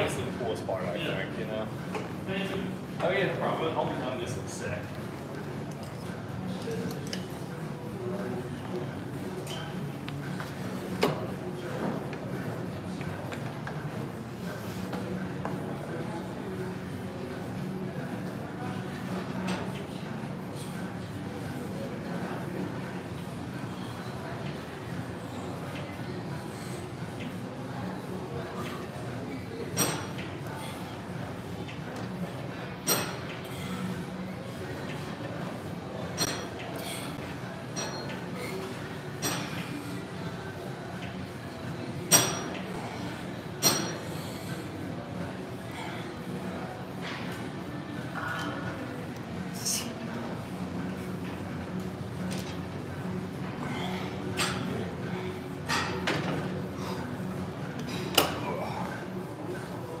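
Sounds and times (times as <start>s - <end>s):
low gym hum: 0.0s - 60.0s.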